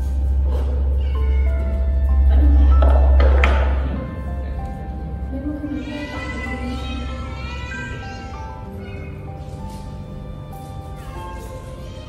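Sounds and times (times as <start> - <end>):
background music with steady bass: 0.0 - 12.0
cats meowing: 0.6 - 3.2.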